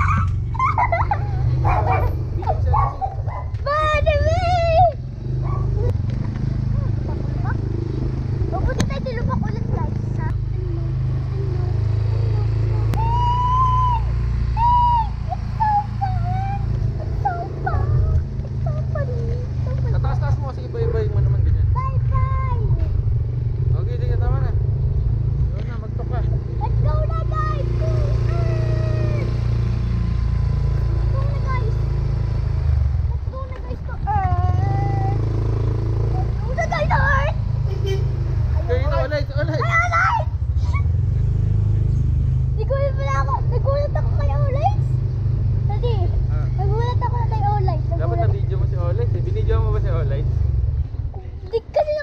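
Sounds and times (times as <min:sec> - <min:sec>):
child calling out: 0:00.0 - 0:00.6, 0:12.9 - 0:19.7, 0:21.8 - 0:22.8, 0:26.7 - 0:29.4, 0:39.6 - 0:40.9
young child crying out: 0:00.0 - 0:01.6, 0:28.3 - 0:29.3
motor scooter rumbling: 0:00.0 - 0:52.0.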